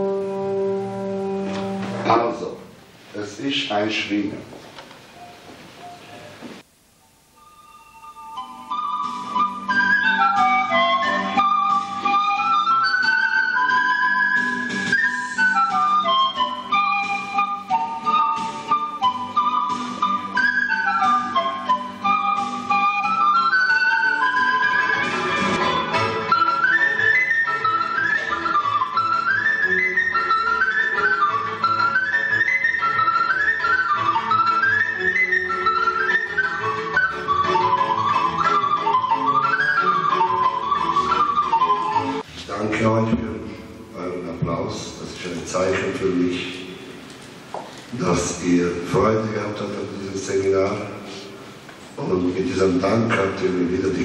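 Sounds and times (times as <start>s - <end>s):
pan flute melody: 0.0s - 2.2s, 5.1s - 42.3s
low held accompaniment: 0.0s - 47.1s.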